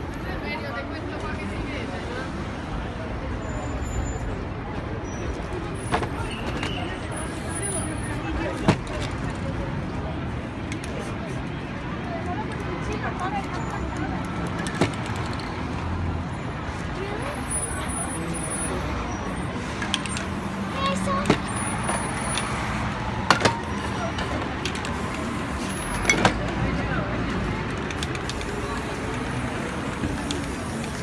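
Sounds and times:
traffic: 0.0 - 31.0
people talking: 19.8 - 21.6.

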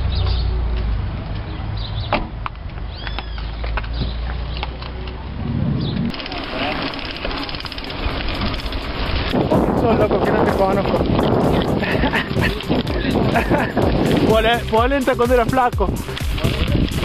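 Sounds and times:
bike tyres rolling on dirt: 2.5 - 17.0
low rumble: 4.9 - 15.0
wind on microphone: 5.3 - 6.2, 8.2 - 14.8, 15.8 - 17.0
scattered clicks: 6.0 - 17.0
voices: 6.0 - 17.0.

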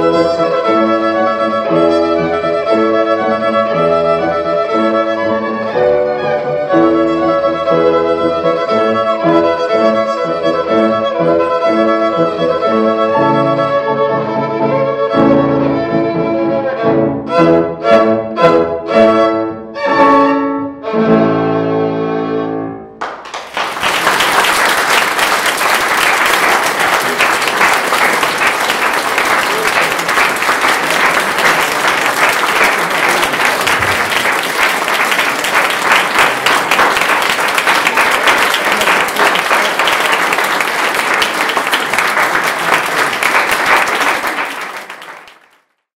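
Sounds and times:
audience applauding: 23.0 - 45.8.

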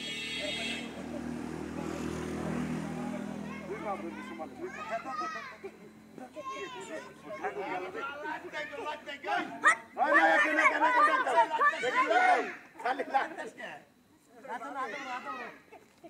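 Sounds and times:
boys calling and shouting: 0.0 - 16.0
high-pitched children's calls: 3.1 - 9.0, 9.6 - 12.8, 14.8 - 15.7.

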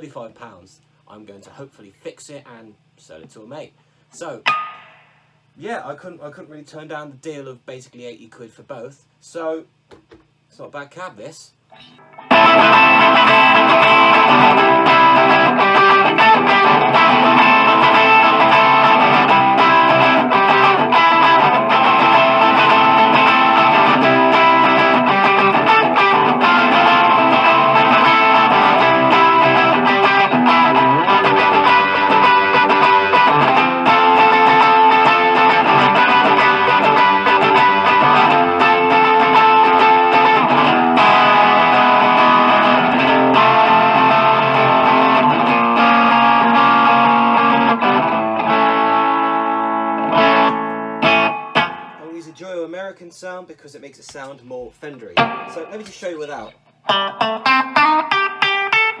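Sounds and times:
electric guitar chords and riffs: 11.7 - 52.0, 55.2 - 55.9, 56.8 - 59.0.

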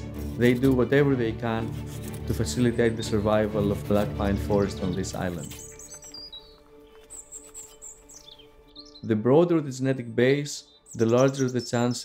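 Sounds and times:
faint background music: 0.0 - 12.0
small birds chirping: 2.6 - 12.0.

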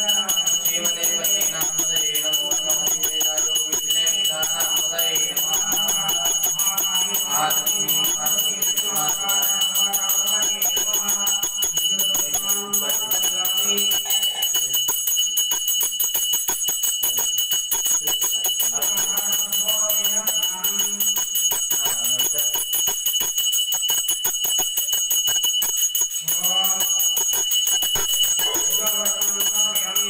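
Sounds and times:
person chanting: 0.0 - 14.8, 18.0 - 21.2, 26.2 - 27.4, 28.3 - 30.0
hand bell ringing rapidly: 0.0 - 30.0.

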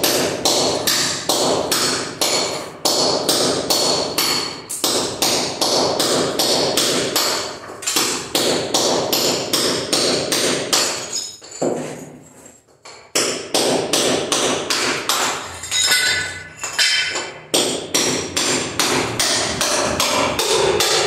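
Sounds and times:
hand tool striking ceramic tiles: 0.0 - 21.0.

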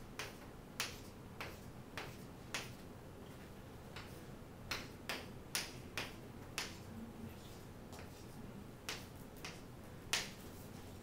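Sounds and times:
chalk clicking on chalkboard: 0.2 - 2.8, 4.0 - 6.8, 7.5 - 11.0.

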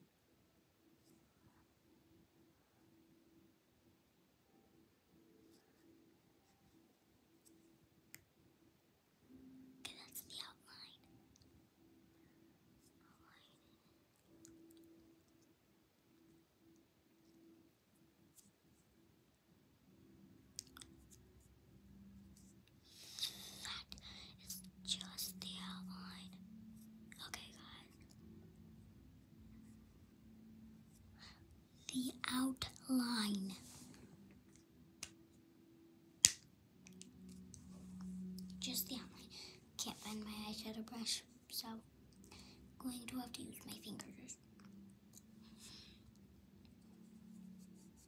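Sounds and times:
faint steady hum: 0.0 - 48.0
girl whispering: 9.8 - 11.1, 13.0 - 13.9, 23.0 - 26.4, 27.1 - 28.2, 31.2 - 34.0, 38.4 - 44.5.

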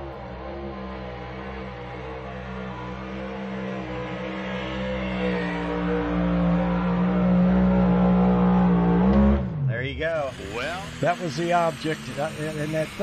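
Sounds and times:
pulling tractor engine droning: 10.1 - 13.0.

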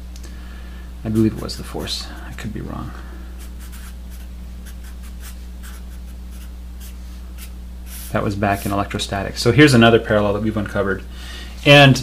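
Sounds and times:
steady low hum: 0.0 - 12.0
marker scratching on paper: 1.1 - 2.6, 3.4 - 8.7.

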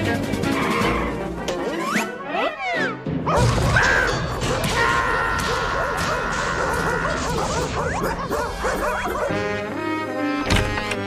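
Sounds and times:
cartoon score music: 0.0 - 11.0.

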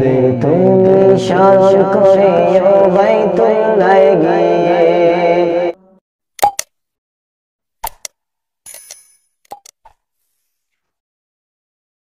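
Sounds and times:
mouse clicks: 9.5 - 10.0.

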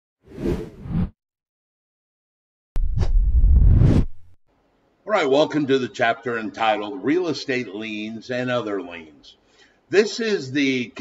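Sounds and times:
low whoosh sound effect: 2.8 - 4.4.

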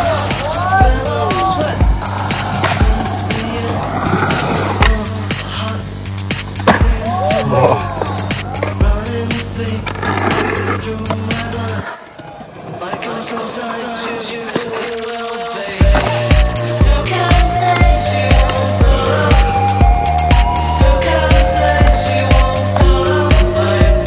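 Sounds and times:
music with bass beat: 0.0 - 11.8, 14.9 - 24.0
skateboard wheels rolling on concrete: 0.0 - 24.0.

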